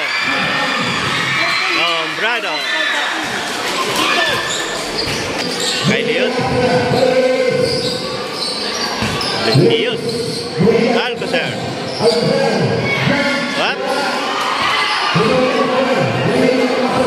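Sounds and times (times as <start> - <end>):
people shouting: 0.0 - 5.0.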